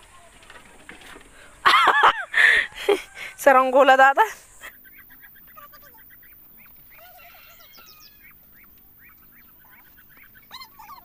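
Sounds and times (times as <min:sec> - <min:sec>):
faint bird calls: 0:04.5 - 0:11.0.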